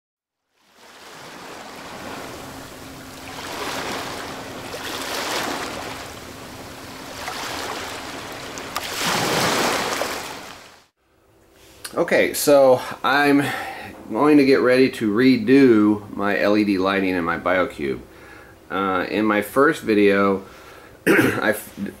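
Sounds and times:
rushing surging water: 0:00.7 - 0:10.9
faint steady hum: 0:00.8 - 0:22.0.

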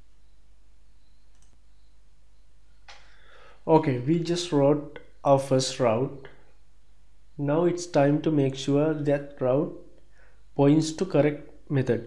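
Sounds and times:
microphone hiss: 0:00.0 - 0:12.0
computer mouse click: 0:01.3 - 0:01.6.

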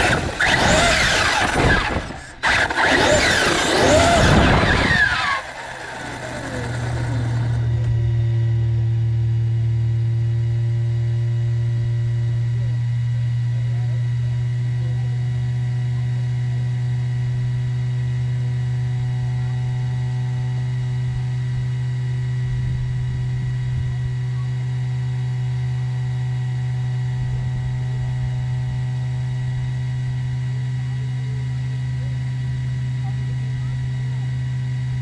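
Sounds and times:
electrical hum: 0:00.0 - 0:35.0.

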